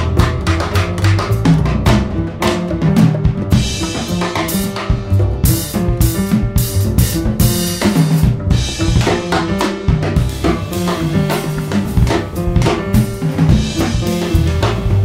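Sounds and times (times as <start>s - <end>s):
drum kit strikes: 0.0s - 15.0s
jazz quartet playing: 0.0s - 15.0s.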